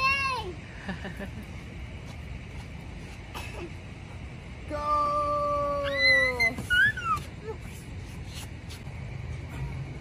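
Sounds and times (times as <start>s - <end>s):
outdoor background noise: 0.0s - 10.0s
small child squealing: 5.7s - 7.6s.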